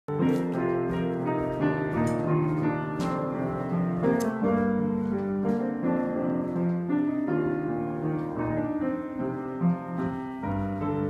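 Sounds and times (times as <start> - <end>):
grand piano playing: 0.1 - 11.0.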